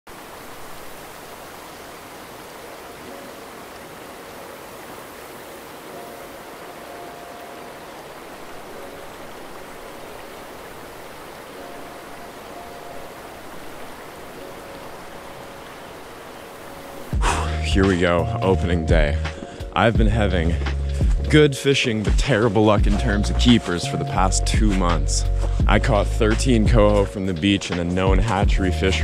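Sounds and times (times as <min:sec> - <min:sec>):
river water rushing over gravel: 0:00.1 - 0:23.8.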